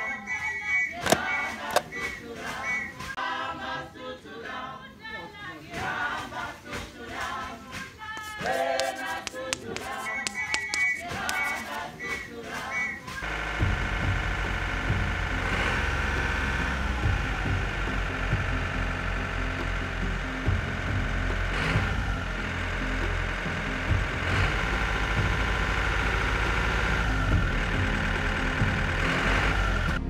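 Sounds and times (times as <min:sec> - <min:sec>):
vehicle engine running: 0:08.8 - 0:11.7, 0:13.2 - 0:30.0
background music: 0:13.5 - 0:30.0.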